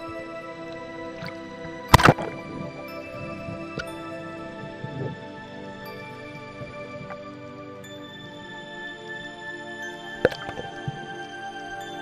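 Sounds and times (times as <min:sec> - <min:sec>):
background music: 0:00.0 - 0:12.0
speargun firing underwater: 0:01.9 - 0:04.0.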